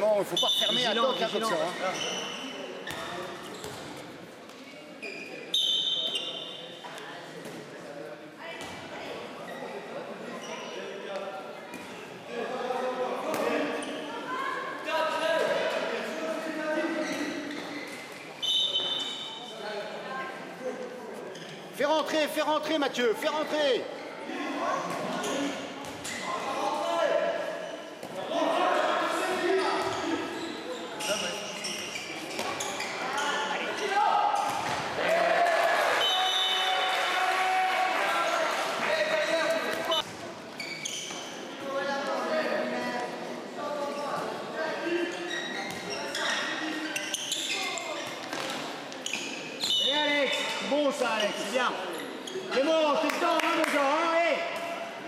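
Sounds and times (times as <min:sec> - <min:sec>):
players shouting: 0:33.8 - 0:38.5.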